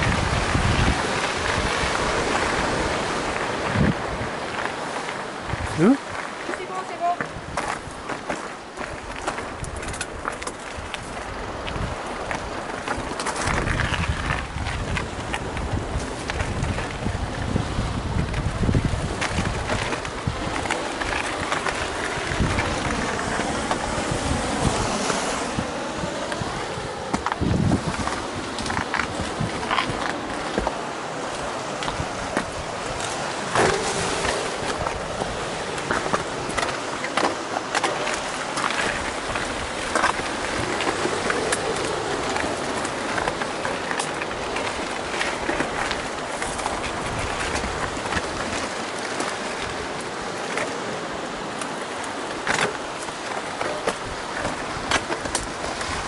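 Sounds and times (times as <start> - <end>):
bike tyres rushing over dirt: 7.4 - 56.0
bike rattling over stones: 7.5 - 50.8.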